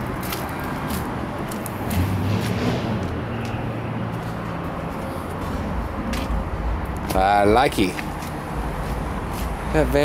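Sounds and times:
outdoor noise: 0.0s - 10.0s
vehicle engine hum: 0.0s - 10.0s.

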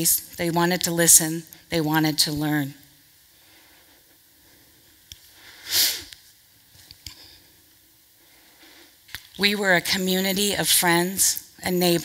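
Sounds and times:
woman sniffing sharply: 5.4s - 6.2s.

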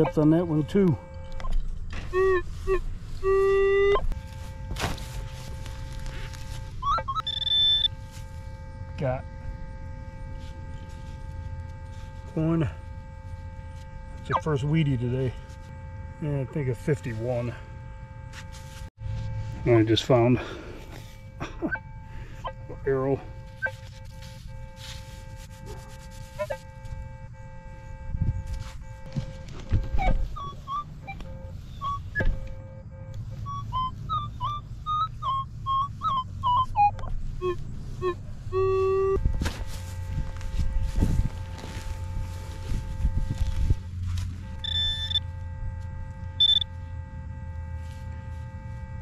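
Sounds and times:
high beeps: 0.0s - 4.7s, 6.6s - 8.2s, 19.6s - 24.8s, 28.3s - 39.2s, 44.5s - 45.4s, 46.4s - 46.8s
knocks of handling and digging: 0.0s - 9.2s
metal detector tones: 0.0s - 49.0s.

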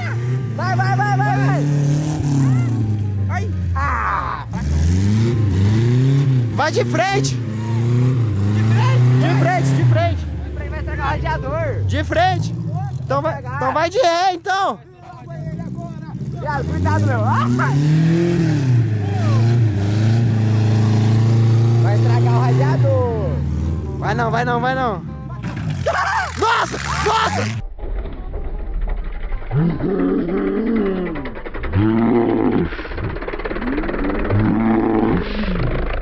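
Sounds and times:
car engine revving: 0.0s - 27.6s, 28.6s - 36.0s
person shouting: 2.3s - 4.6s, 25.8s - 27.6s.

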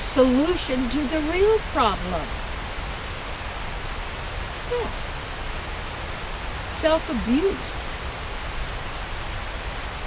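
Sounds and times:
outdoor rushing hiss and rumble: 0.0s - 10.0s
person saying yeah: 4.7s - 5.0s.

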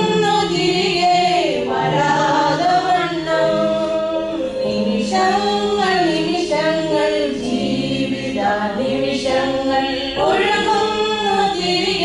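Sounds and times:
women singing a hymn: 0.0s - 12.0s.

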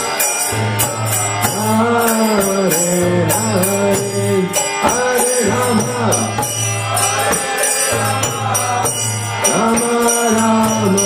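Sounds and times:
harmonium drone: 0.0s - 11.0s
jingling percussion: 0.0s - 11.0s
man singing a devotional chant: 0.0s - 11.0s.

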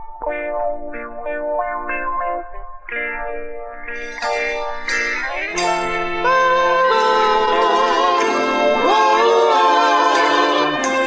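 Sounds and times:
soul music chords: 0.0s - 11.0s.

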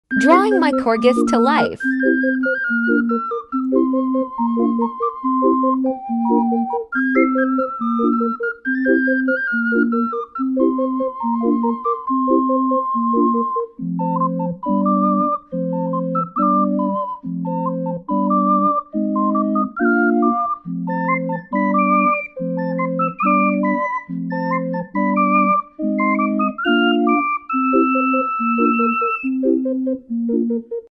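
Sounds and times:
instrumental background music: 0.1s - 30.9s.

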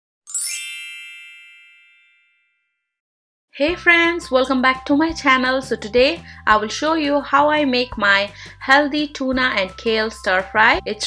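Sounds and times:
bright chime: 0.3s - 2.7s.

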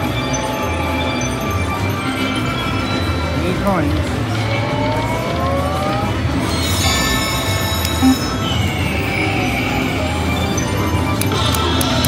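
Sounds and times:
slot machine electronic chimes: 0.0s - 11.7s
slot machines ringing: 0.0s - 12.0s
short low beep: 7.8s - 8.4s.

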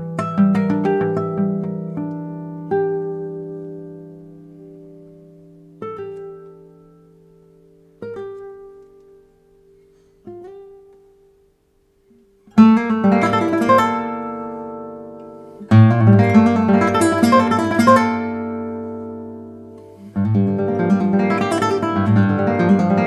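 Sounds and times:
classical guitar plucked notes: 0.0s - 23.0s
guitar strummed chords: 12.5s - 23.0s.

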